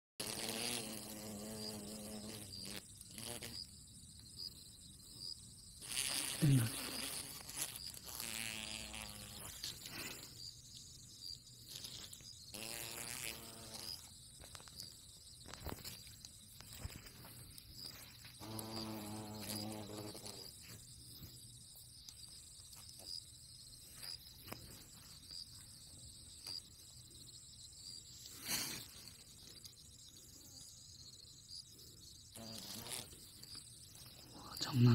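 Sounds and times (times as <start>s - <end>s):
hornet wings buzzing: 0.2s - 3.8s, 5.7s - 10.8s, 11.5s - 21.3s, 32.4s - 34.9s
high pulsing insect trill: 0.2s - 34.9s.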